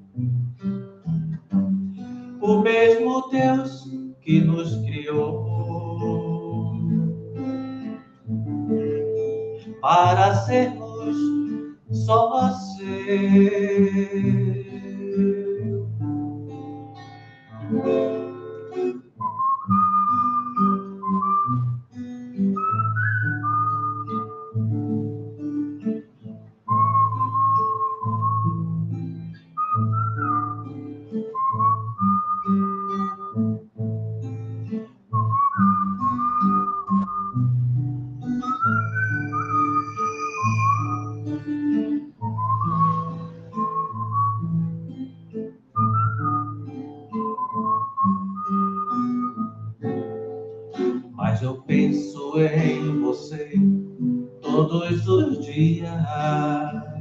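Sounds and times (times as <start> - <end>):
acoustic guitar strummed: 0.0 - 57.0
man whistling a melody: 0.6 - 57.0.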